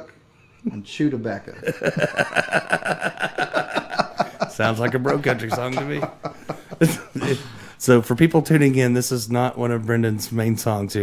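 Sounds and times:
men laughing: 1.5s - 7.7s.

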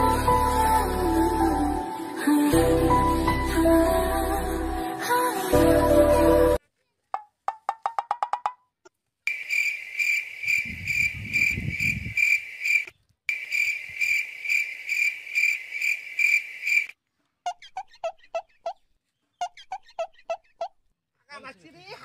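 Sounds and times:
cricket chirping: 9.3s - 16.9s.

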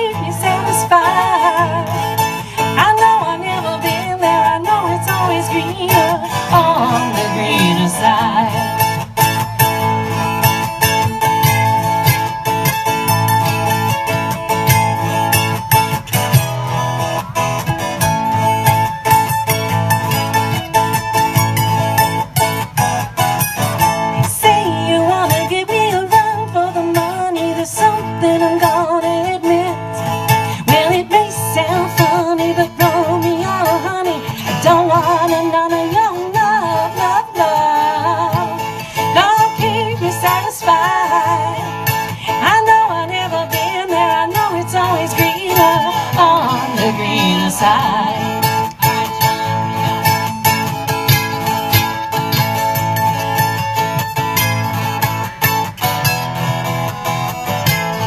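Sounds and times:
acoustic guitar: 0.0s - 58.0s
plucked string melody: 0.0s - 58.0s.

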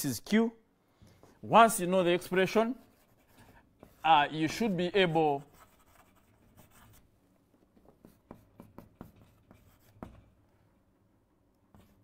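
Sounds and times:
faint writing strokes: 1.1s - 10.9s, 11.5s - 12.0s.

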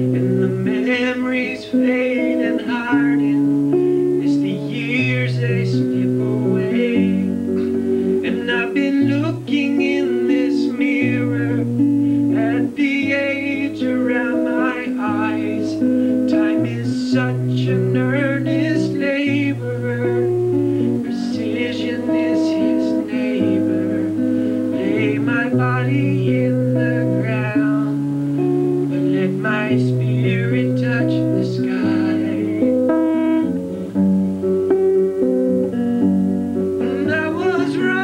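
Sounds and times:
acoustic guitar music: 0.0s - 38.0s.

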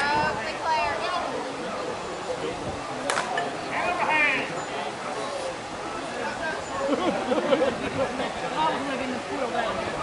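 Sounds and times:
bat striking softball: 3.1s - 3.4s.

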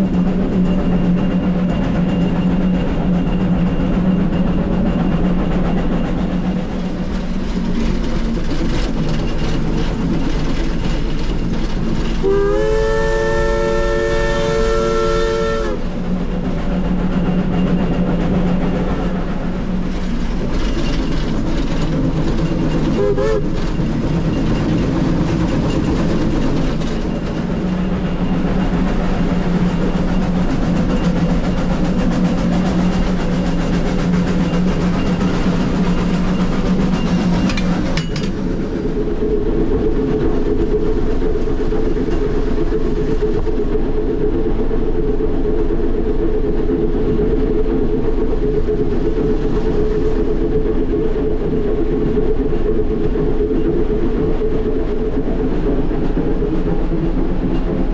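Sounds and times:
steam locomotive running: 0.0s - 57.9s.

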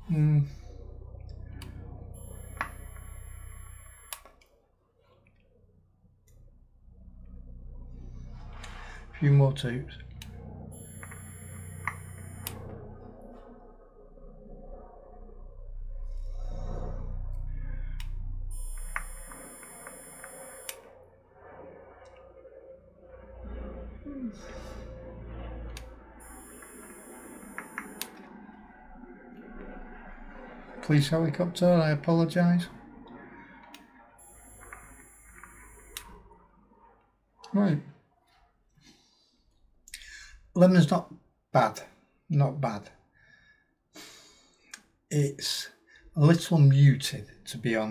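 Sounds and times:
high electronic whine: 0.0s - 4.4s, 6.4s - 36.7s
breathy exhale: 40.0s - 40.5s.

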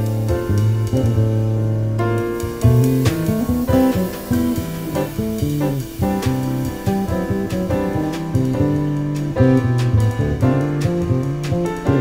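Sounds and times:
electric bass plucking: 0.0s - 12.0s.

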